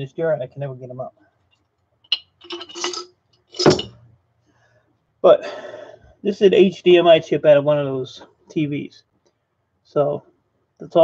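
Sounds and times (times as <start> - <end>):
chips clinking in glass jar: 2.1 - 3.9.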